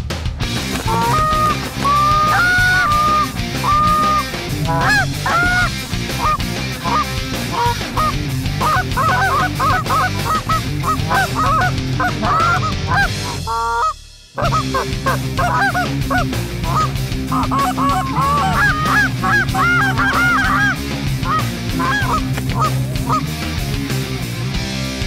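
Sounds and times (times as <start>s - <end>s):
geese honking and clucking: 0.6s - 23.3s.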